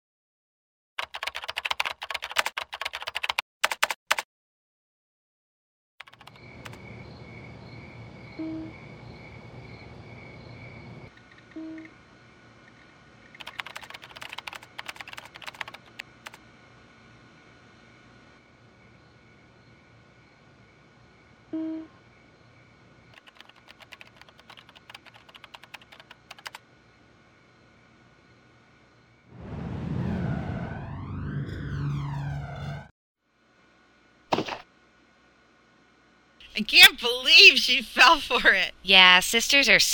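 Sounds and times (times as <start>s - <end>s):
typing on computer keyboard: 1.0s - 4.2s, 6.0s - 6.8s, 13.4s - 16.4s, 23.2s - 26.6s
whoosh transition effect: 29.3s - 32.9s.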